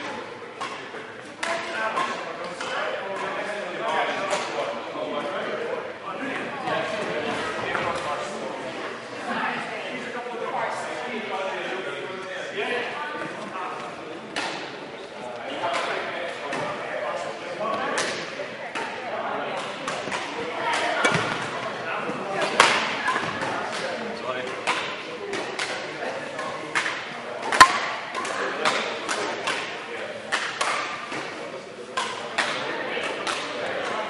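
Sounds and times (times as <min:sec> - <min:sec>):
echoing indistinct voices: 0:00.0 - 0:34.0
racket striking shuttlecock: 0:22.4 - 0:23.8, 0:26.4 - 0:29.7
shuttlecock hits: 0:22.4 - 0:31.4, 0:32.0 - 0:34.0.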